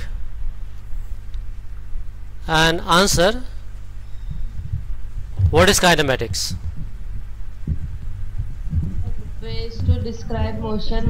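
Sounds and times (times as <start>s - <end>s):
low steady hum and rumble: 0.0s - 11.0s
soft thumps: 6.3s - 11.0s.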